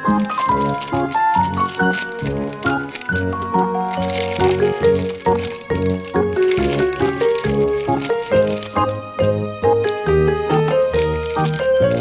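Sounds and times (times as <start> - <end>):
bouncy background music: 0.0 - 12.0
plastic bag crinkling: 0.0 - 12.0.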